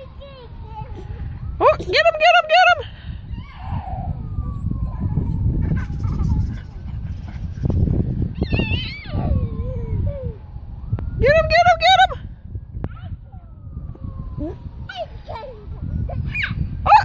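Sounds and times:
wind rumble: 0:00.0 - 0:17.0
high-pitched voice crying out: 0:08.4 - 0:10.4, 0:14.9 - 0:17.0.

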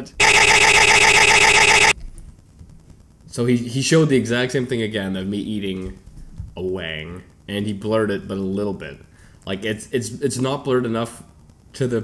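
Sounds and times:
harsh wavering buzzing: 0:00.0 - 0:02.0.

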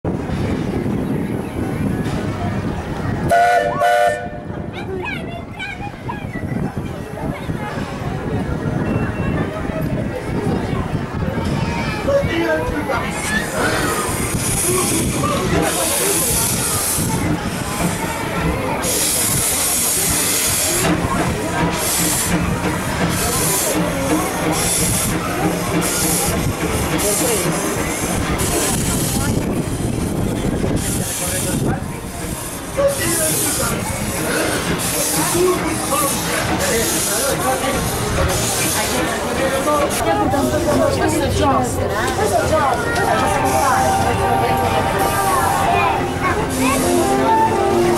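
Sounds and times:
steam locomotive rumbling: 0:00.1 - 0:47.9.

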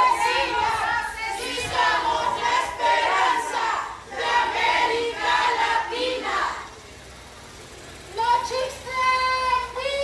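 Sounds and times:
woman chanting through megaphone: 0:00.0 - 0:03.9.

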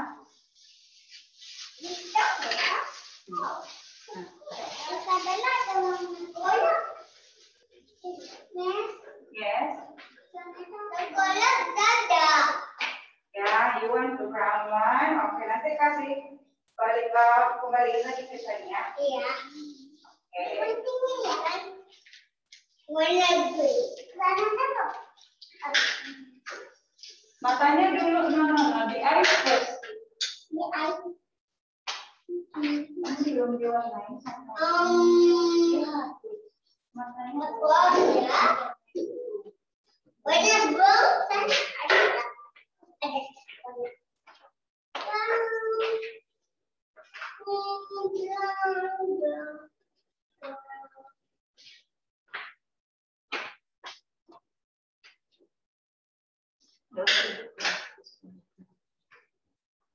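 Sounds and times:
person talking: 0:32.3 - 0:36.4.

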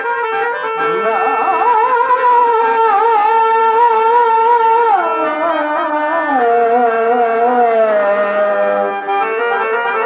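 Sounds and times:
harmonium tone: 0:00.0 - 0:10.0
man singing high note: 0:00.8 - 0:08.9.

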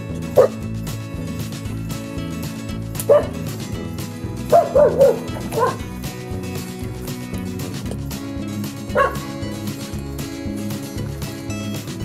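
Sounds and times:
dog yipping: 0:00.4 - 0:00.6, 0:03.0 - 0:03.4, 0:04.5 - 0:05.9, 0:08.9 - 0:09.3.

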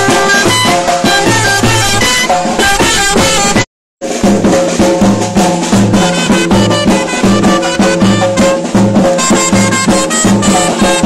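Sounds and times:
reed wind instrument melody: 0:00.0 - 0:03.6, 0:05.9 - 0:11.0
drum beaten with a stick: 0:00.0 - 0:11.0.

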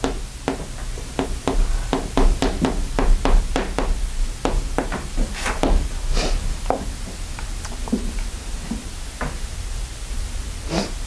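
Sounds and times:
chalk tapping on chalkboard: 0:00.0 - 0:05.8.

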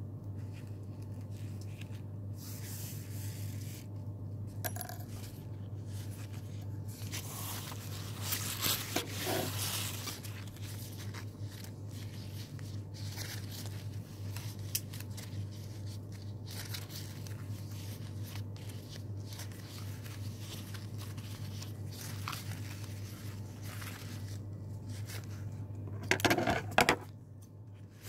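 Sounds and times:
low electrical hum: 0:00.0 - 0:28.0
ribbon rustling: 0:05.9 - 0:25.4.

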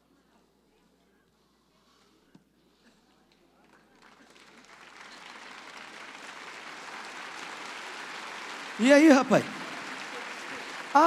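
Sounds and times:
audience applause: 0:03.8 - 0:11.0.

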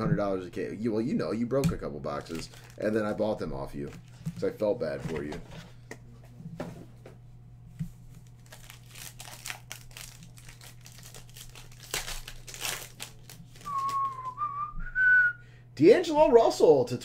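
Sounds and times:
wrapper crinkling and rustling: 0:02.1 - 0:05.2, 0:08.2 - 0:14.4
cards being handled: 0:08.1 - 0:14.3
person whistling: 0:13.6 - 0:15.4.

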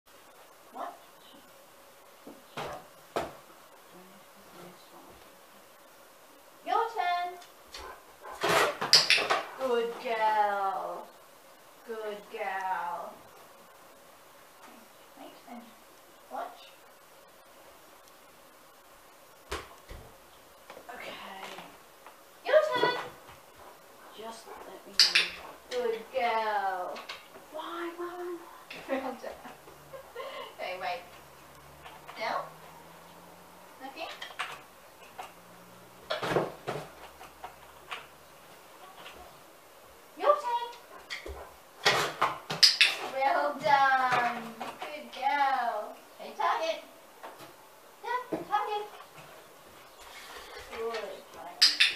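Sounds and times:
woman's voice: 0:06.6 - 0:07.4, 0:09.5 - 0:11.1, 0:11.8 - 0:13.3, 0:15.2 - 0:16.8, 0:20.8 - 0:21.8, 0:22.4 - 0:23.2, 0:24.1 - 0:29.5, 0:30.3 - 0:31.2, 0:32.1 - 0:32.5, 0:33.8 - 0:34.2, 0:40.2 - 0:40.8, 0:43.0 - 0:46.9, 0:48.0 - 0:49.0, 0:50.7 - 0:51.8.

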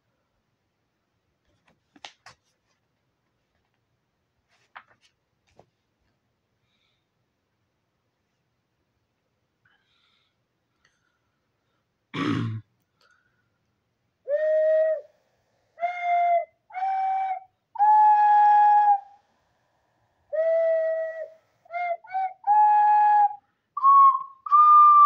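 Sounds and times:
flute-like whistle melody: 0:14.3 - 0:15.2, 0:15.8 - 0:19.2, 0:20.3 - 0:25.0.

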